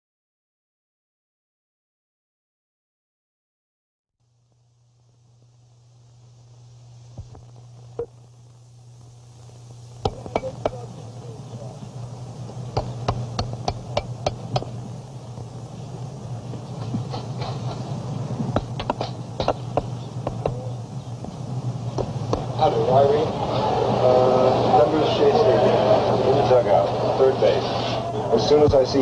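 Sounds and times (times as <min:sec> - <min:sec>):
steady low hum: 0:04.2 - 0:29.0
hammer striking metal stake: 0:12.8 - 0:14.8, 0:18.5 - 0:20.6.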